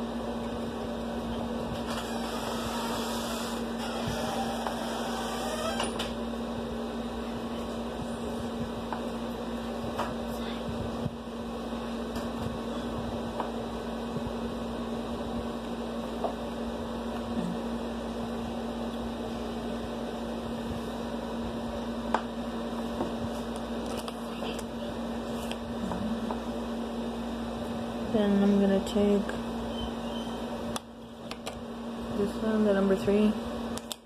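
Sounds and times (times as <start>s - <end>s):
room noise: 0.0s - 34.0s
steady hum: 0.0s - 34.0s.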